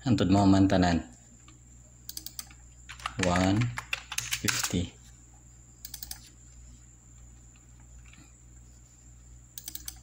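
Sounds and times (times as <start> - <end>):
faint low hum: 0.0 - 10.0
computer keyboard key clicks: 2.1 - 4.8, 5.9 - 6.2, 9.6 - 10.0.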